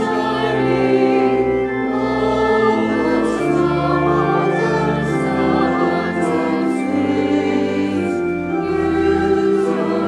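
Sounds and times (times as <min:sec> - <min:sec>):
mixed choir singing a hymn: 0:00.0 - 0:10.0.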